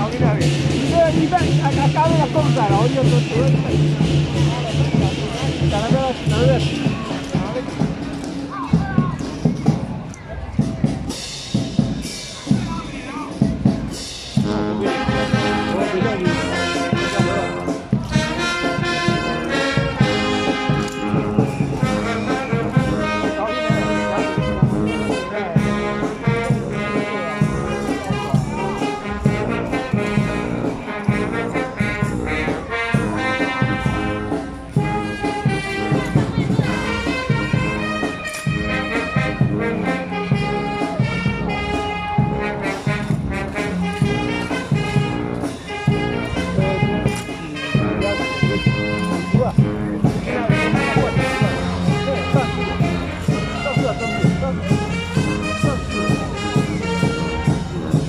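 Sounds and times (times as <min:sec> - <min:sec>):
marching brass band playing: 0:00.0 - 0:58.0.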